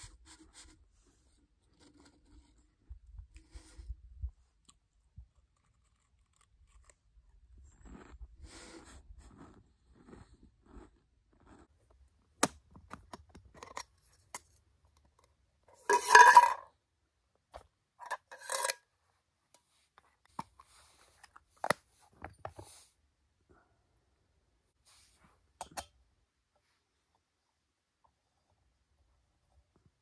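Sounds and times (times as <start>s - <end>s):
cook gear scraping: 18.1s - 18.8s.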